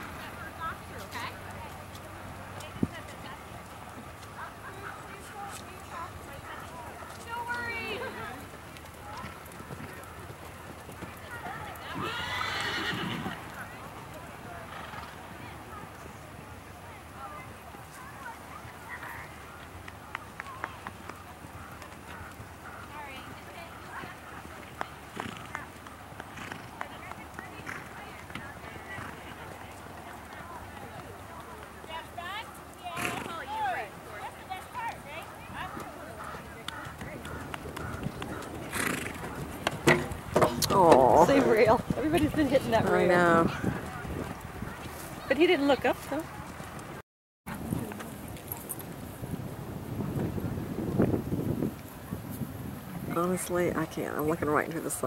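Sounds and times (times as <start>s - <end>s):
horse hoofbeats on sand: 0.0s - 55.0s
horse whinnying: 11.9s - 13.5s, 36.8s - 41.8s
hoof knocking fence rail: 39.6s - 41.0s.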